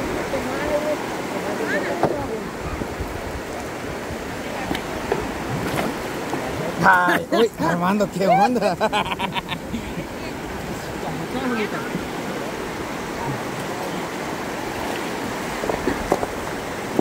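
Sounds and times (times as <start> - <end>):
river water running over rocks: 0.0 - 17.0
person laughing: 8.2 - 10.1.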